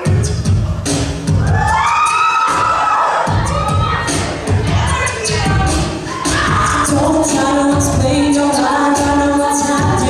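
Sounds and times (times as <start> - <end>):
beatboxed bass and drum beat: 0.0 - 10.0.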